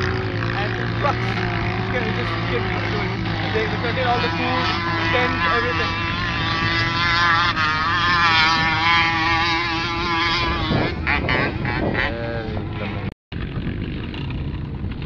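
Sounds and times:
vehicle engine revving hard: 0.0 - 13.1.

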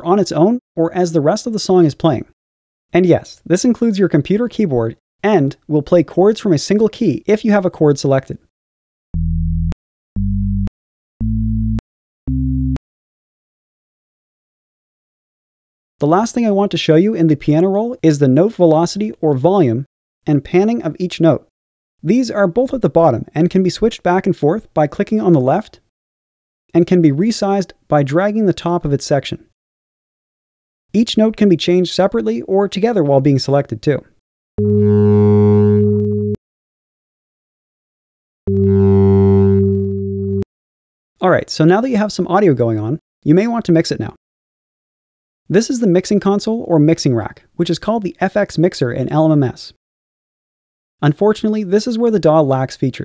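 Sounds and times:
low synth chords: 9.2 - 12.8, 34.6 - 36.4, 38.5 - 40.4.

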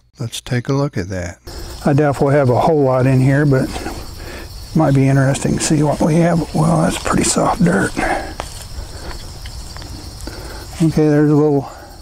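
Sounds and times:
crickets chirping: 0.2 - 12.0.

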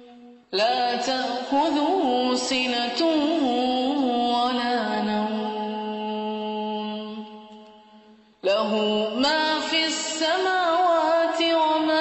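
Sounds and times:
melodic chanted recitation: 0.0 - 12.0.

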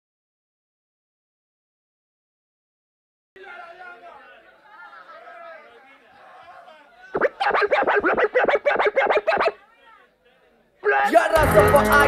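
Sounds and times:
vinyl record scratching: 7.1 - 9.6.

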